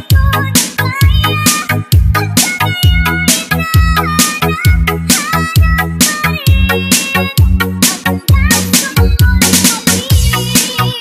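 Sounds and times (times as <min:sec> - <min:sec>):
disco dance music: 0:00.0 - 0:11.0.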